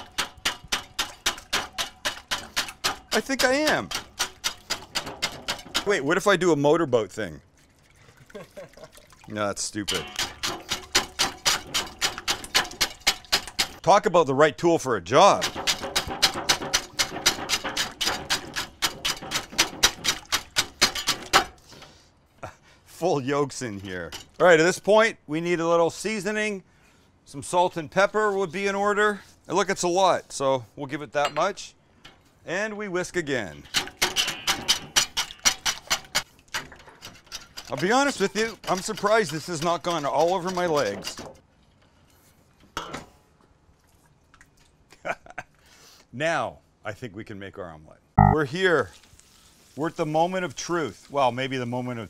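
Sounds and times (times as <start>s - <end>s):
whisk clicking against metal bowl: 0.0s - 6.0s, 9.9s - 13.8s, 33.7s - 41.3s.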